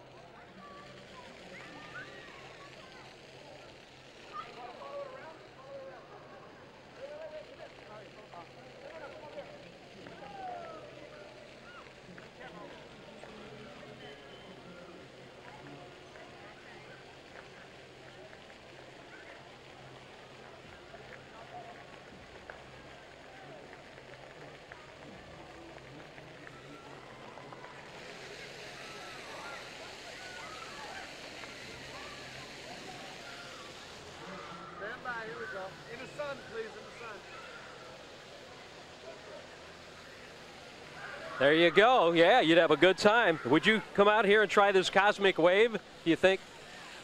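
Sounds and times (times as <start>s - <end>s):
crowd chattering: 0.0s - 47.0s
fountain jets spraying: 0.0s - 47.0s
children shouting: 0.4s - 5.1s, 26.3s - 44.0s.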